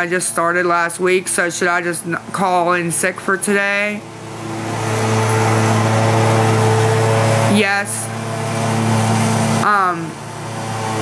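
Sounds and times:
loud motor hum: 0.0s - 11.0s.

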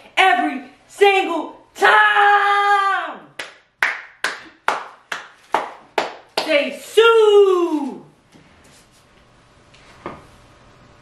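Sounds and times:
person clapping hands: 3.4s - 6.6s.

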